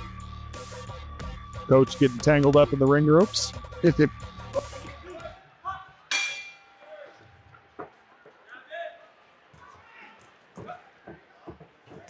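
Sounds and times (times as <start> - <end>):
background music: 0.0 - 7.1
boxing bell ringing: 6.1 - 7.0.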